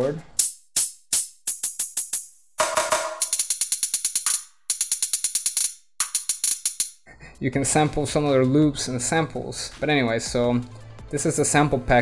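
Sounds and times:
hi-hat rolls: 0.3 - 6.9.

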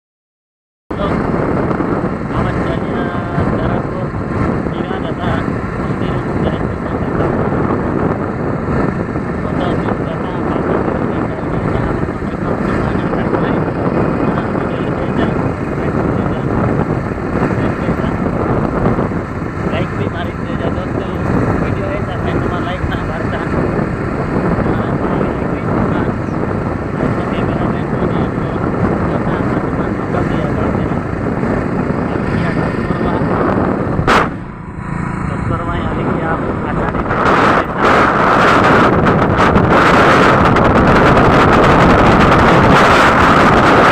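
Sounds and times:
vehicle noise: 0.9 - 43.9
wind buffeting microphone: 0.9 - 43.9.

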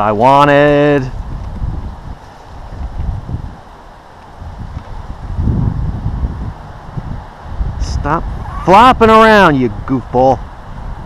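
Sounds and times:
wind buffeting microphone: 0.0 - 11.0
dry brush rustling: 1.0 - 7.6.

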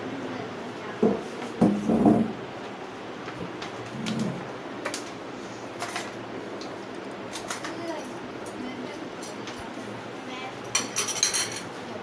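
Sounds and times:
dishes and cutlery clinking: 10.7 - 11.8.

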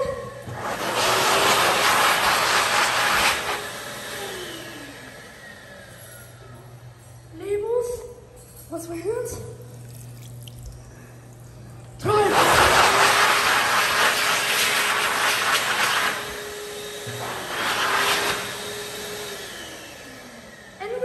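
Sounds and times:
hand dryer blowing with motor whine: 0.0 - 7.0, 9.8 - 21.0.

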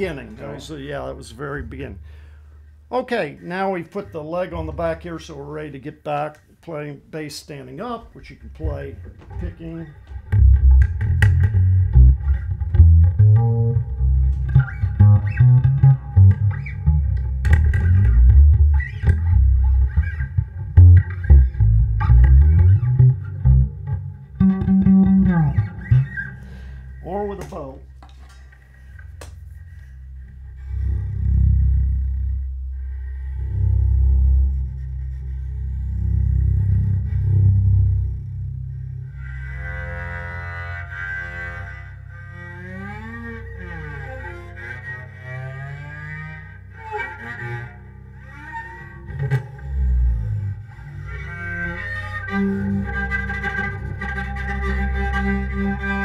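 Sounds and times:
bowed bass notes: 0.0 - 56.0
plucked electric bass: 4.0 - 5.7, 8.6 - 28.0, 28.7 - 56.0.

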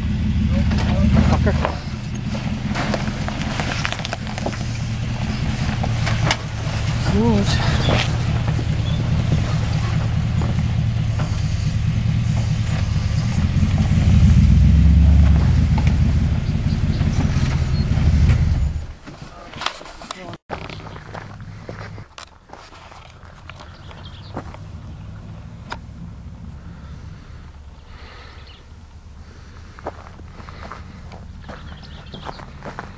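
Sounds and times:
truck engine running under load: 0.0 - 19.0, 20.5 - 22.2, 23.1 - 32.9.

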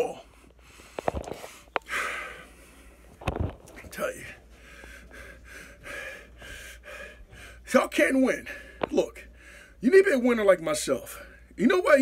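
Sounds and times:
man breathing heavily: 0.1 - 3.2, 4.2 - 9.8.

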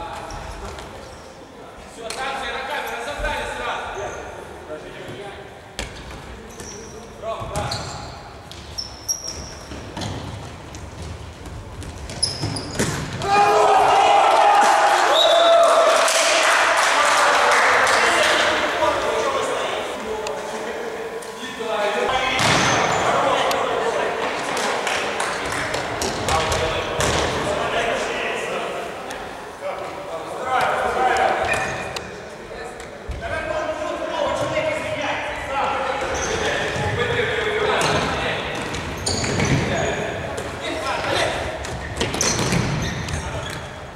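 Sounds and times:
sneakers squeaking on floor: 0.1 - 1.3, 5.8 - 13.2, 22.1 - 23.4, 31.4 - 32.0, 35.9 - 43.9
loud shouting: 13.2 - 19.2.

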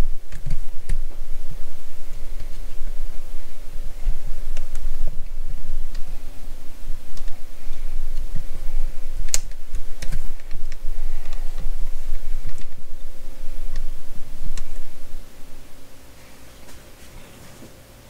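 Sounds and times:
low rumble: 0.0 - 16.9.

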